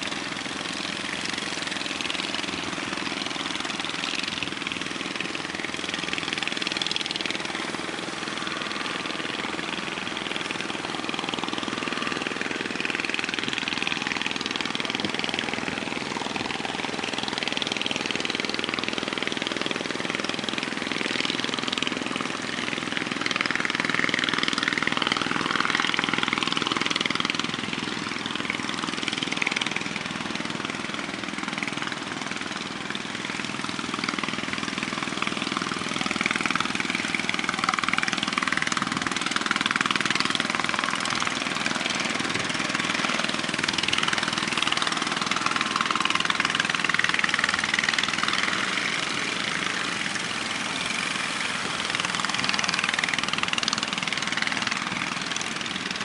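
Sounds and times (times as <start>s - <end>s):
boat engine running: 0.0s - 56.0s.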